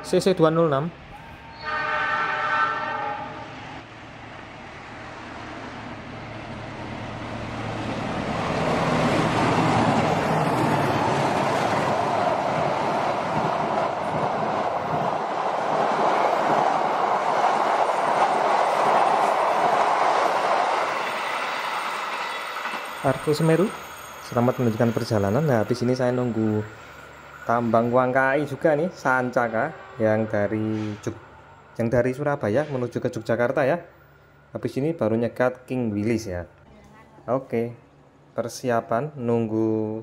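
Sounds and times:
locomotive horn: 1.4s - 3.6s
train wheels clattering on rails: 8.6s - 25.4s.

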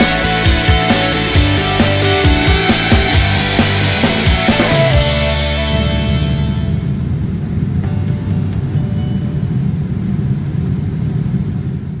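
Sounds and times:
airliner cabin rumble: 2.2s - 12.0s.

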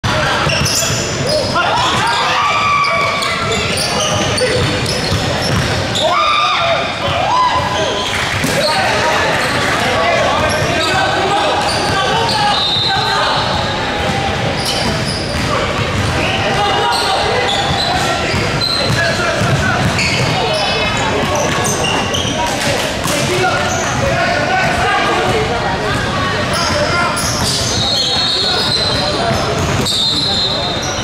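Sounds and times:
players calling out: 0.1s - 31.0s
sneakers squeaking: 0.1s - 31.0s
basketball bouncing: 4.1s - 5.8s, 17.7s - 20.4s.

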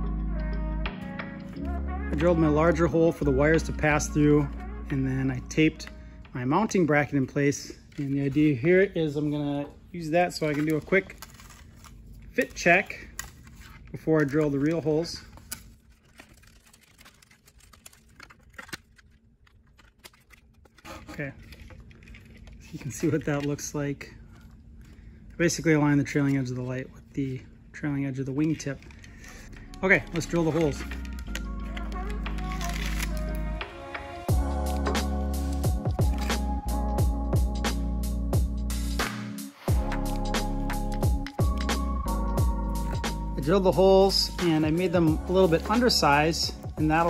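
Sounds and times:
electronic music with deep bass: 0.0s - 5.9s, 29.6s - 47.0s.

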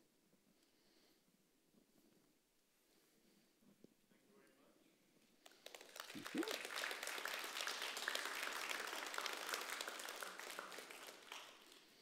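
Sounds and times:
audience applauding: 5.5s - 12.0s.

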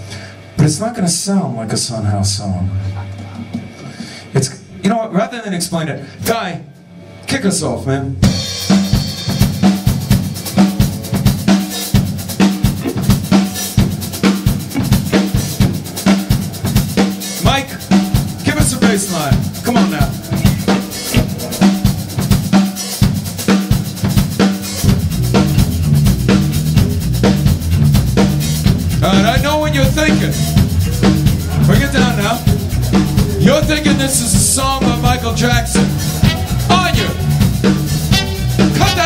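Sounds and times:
bass guitar: 8.2s - 39.0s
drum kit playing groove: 8.2s - 39.0s.

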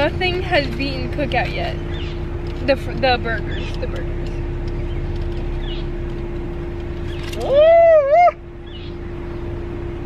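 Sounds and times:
man exclaiming ooh: 7.4s - 8.4s.

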